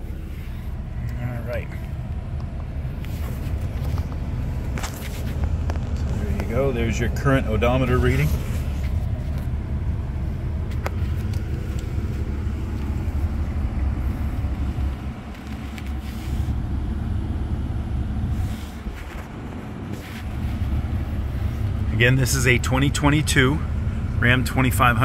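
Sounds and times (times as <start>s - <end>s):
diesel engine idling: 0.0s - 25.0s.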